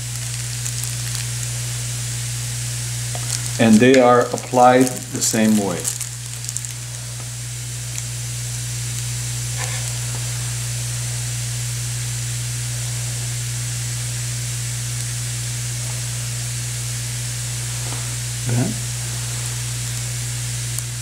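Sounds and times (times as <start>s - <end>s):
constant low hum: 0.0s - 21.0s
steady hiss: 0.0s - 21.0s.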